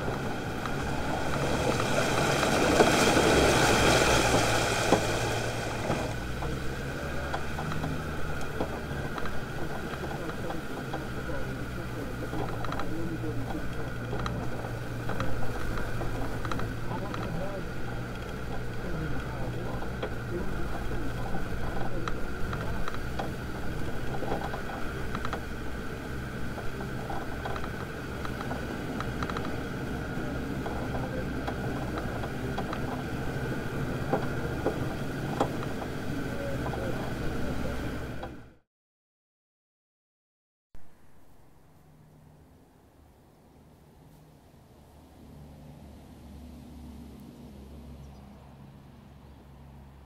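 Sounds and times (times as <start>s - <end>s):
diesel engine running: 0.0s - 38.6s.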